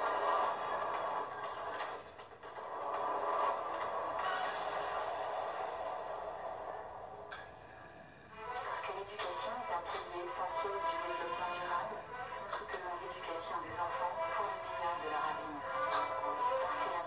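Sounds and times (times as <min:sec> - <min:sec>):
theme music from tv speaker: 0:00.0 - 0:17.0.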